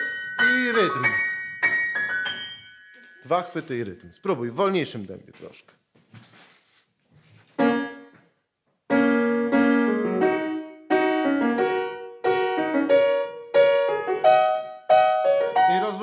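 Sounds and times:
piano chords: 0.0s - 4.6s, 7.6s - 8.1s, 8.9s - 16.0s.

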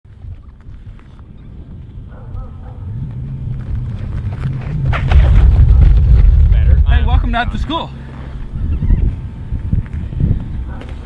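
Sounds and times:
wind rumble on microphone: 0.1s - 11.0s.

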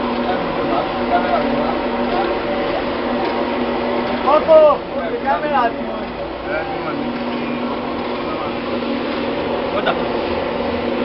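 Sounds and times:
electric mixer humming: 0.0s - 11.0s.

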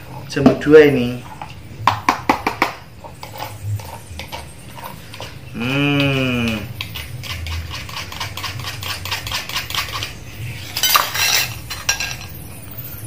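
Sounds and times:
spoon clattering: 0.5s - 13.0s
spoon clinking against cup: 10.7s - 12.4s.

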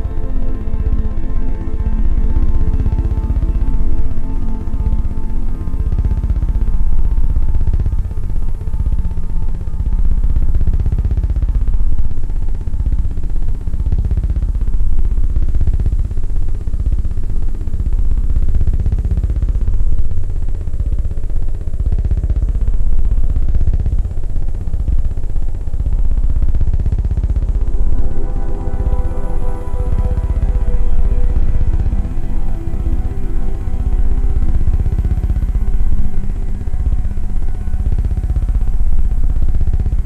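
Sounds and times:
heavy bass drone: 0.0s - 40.0s
sweeping electronic tones: 27.5s - 39.7s.

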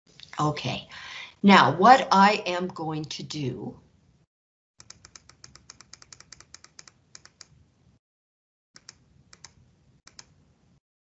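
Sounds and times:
computer keys clicking: 4.8s - 7.6s, 8.8s - 10.3s.

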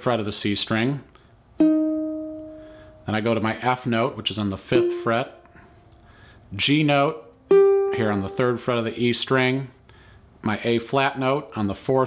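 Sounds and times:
ukulele note ringing: 1.6s - 3.0s, 4.7s - 5.9s, 7.5s - 8.6s.

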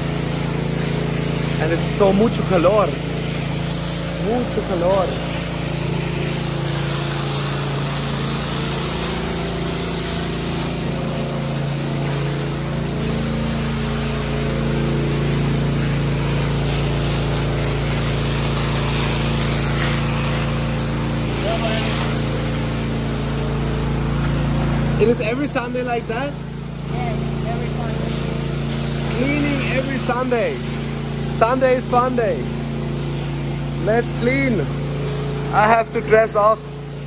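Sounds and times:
hose spraying water on concrete: 0.0s - 37.0s
steady motor hum: 0.0s - 37.0s.

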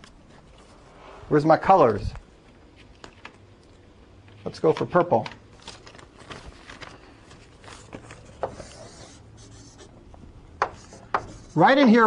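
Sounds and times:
writing tip tapping board: 10.6s - 11.4s
scratchy writing strokes on board: 10.6s - 11.7s.

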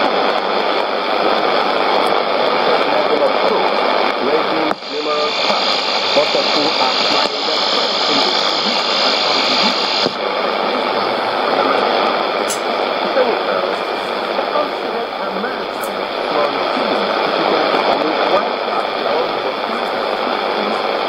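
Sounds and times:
indistinct radio speech: 0.0s - 21.0s
radio static hiss: 0.0s - 21.0s.

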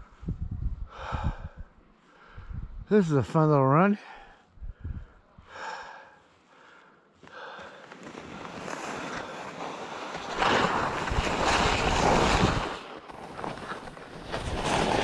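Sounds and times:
wind rushing over microphone: 0.0s - 3.0s, 4.5s - 5.4s, 10.3s - 12.9s
skis sliding over packed snow: 7.3s - 15.0s.

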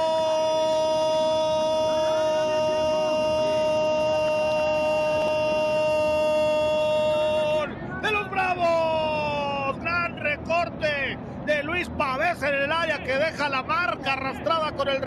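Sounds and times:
commentator shouting goal call: 0.0s - 10.8s
rapid excited commentary: 1.5s - 15.0s.

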